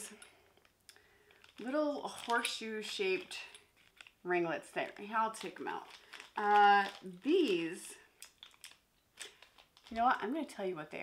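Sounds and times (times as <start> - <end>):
packaging crinkling: 0.5 - 10.2.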